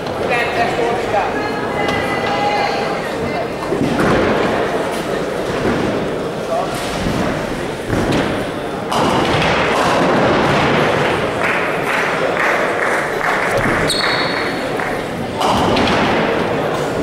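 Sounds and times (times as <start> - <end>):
murmur of voices: 0.0 - 17.0
bowling balls rolling and thudding: 3.6 - 17.0.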